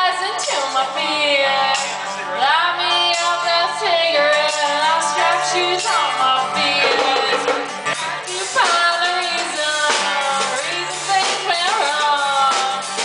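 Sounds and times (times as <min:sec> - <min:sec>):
acoustic guitar: 0:00.0 - 0:13.0
upright bass: 0:00.0 - 0:13.0
woman singing into a microphone: 0:00.0 - 0:13.0.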